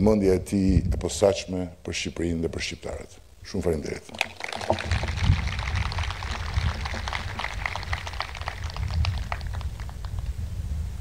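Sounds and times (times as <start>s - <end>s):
crowd applauding: 4.1s - 10.3s.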